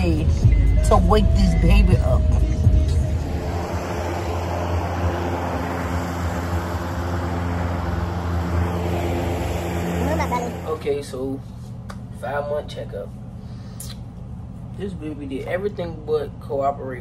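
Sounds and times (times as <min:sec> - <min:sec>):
vehicle engine humming: 0:00.0 - 0:17.0.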